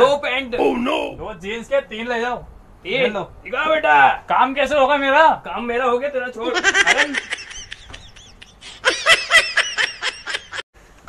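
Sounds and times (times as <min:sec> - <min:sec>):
person laughing: 0:06.5 - 0:10.6.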